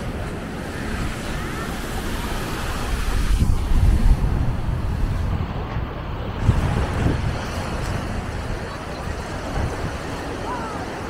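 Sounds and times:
small waves washing onto shore: 0.0s - 11.0s
wind buffeting microphone: 0.0s - 11.0s.

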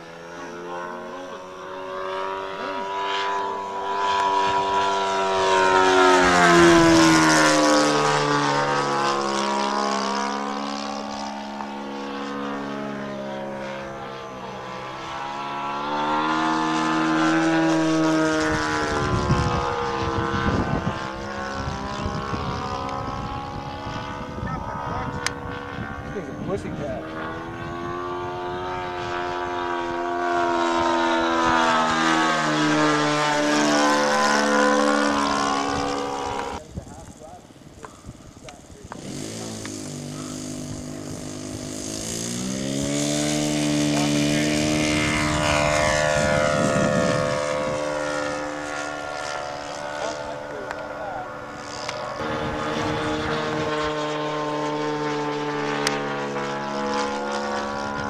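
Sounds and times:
model plane engine passing: 0.0s - 58.0s.

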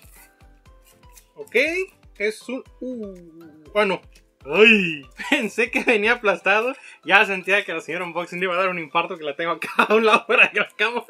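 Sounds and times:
soft background music: 0.0s - 11.0s
man saying a word: 2.8s - 4.0s.

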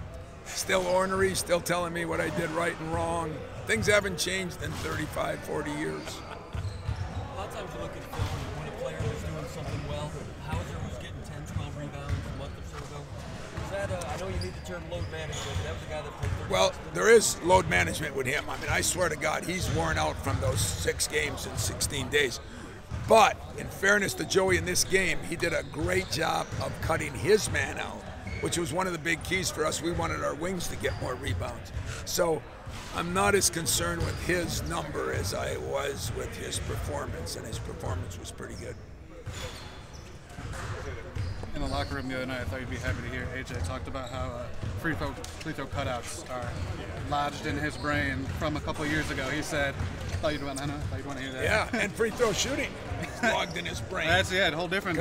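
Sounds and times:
basketballs bouncing on gym floor: 11.5s - 12.4s, 15.5s - 16.6s, 44.5s - 45.4s, 49.4s - 51.2s.

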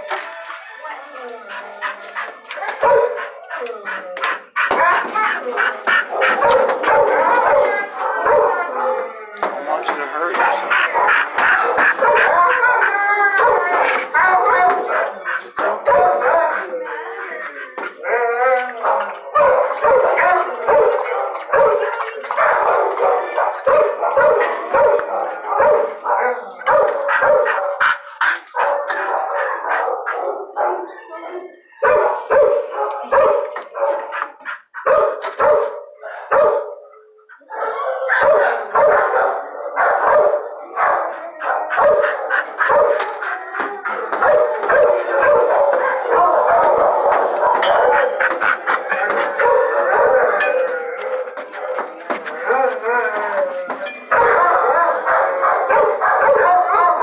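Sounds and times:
dogs barking: 0.0s - 57.0s.

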